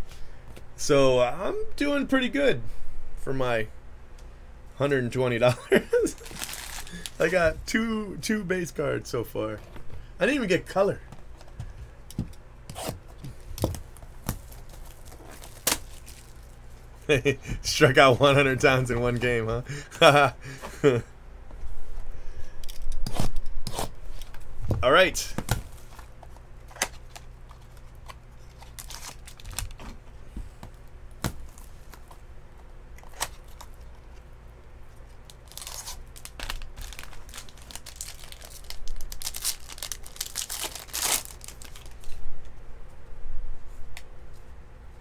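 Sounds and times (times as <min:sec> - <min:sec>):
cardboard and wrapping tearing: 0:06.2 - 0:07.4, 0:14.3 - 0:16.6, 0:28.5 - 0:29.8, 0:35.3 - 0:42.2.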